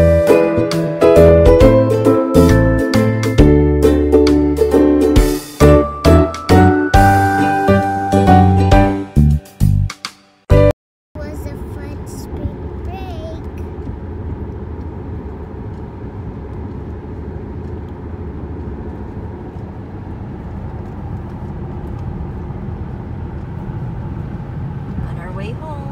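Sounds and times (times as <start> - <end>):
car road and engine noise: 0.0 - 8.8, 11.2 - 25.9.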